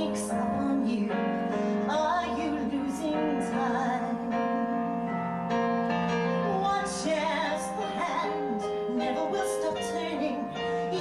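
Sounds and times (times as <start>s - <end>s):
woman singing: 0.0s - 5.1s, 6.4s - 11.0s
piano accompaniment: 0.0s - 11.0s.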